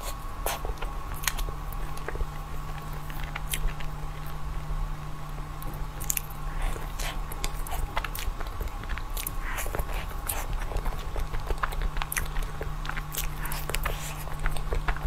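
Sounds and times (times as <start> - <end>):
biting and chewing: 0.0 - 4.4, 5.6 - 15.0.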